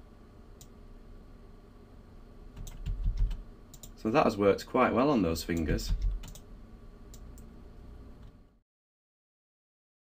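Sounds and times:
keyboard and mouse clicks: 2.6 - 4.0, 5.6 - 6.5.

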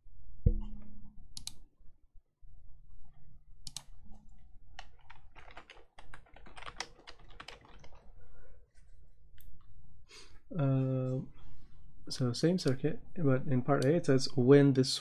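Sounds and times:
keyboard typing: 4.8 - 8.1.

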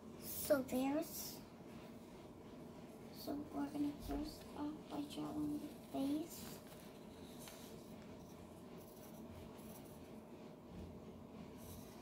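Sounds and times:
pencil scratching on paper: 1.1 - 12.0.

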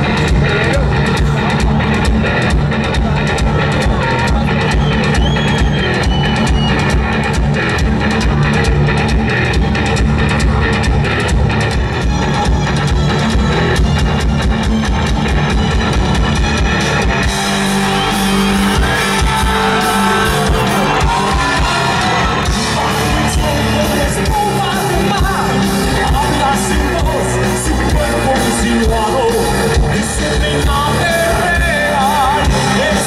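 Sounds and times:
bass guitar: 0.0 - 33.0
electric guitars: 0.0 - 33.0
fast drum-kit beat: 0.0 - 33.0.

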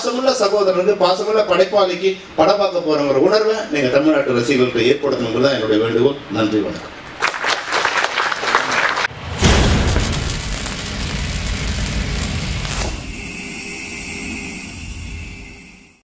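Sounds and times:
applause: 7.2 - 9.1
deep boom with whoosh: 9.1 - 13.2
steady high tone: 9.4 - 16.0.

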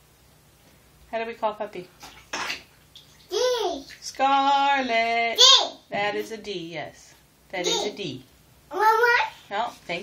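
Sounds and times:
bath water swishing: 1.9 - 5.0.

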